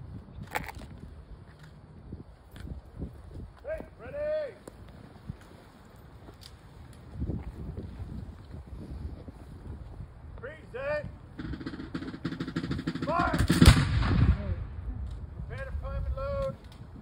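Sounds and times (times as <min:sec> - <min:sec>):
shouted commands: 0:03.6 - 0:04.6, 0:10.4 - 0:11.2, 0:13.0 - 0:13.6, 0:15.5 - 0:16.6
musket volley: 0:11.4 - 0:16.6.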